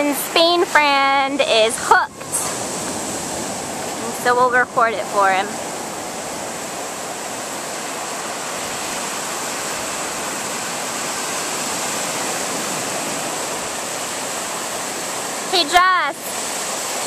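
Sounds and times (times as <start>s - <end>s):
waves washing up a beach: 0.0s - 17.0s.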